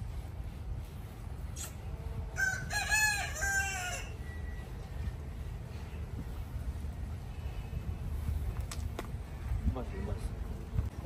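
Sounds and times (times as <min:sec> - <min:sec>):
rooster crowing: 0:02.4 - 0:04.3.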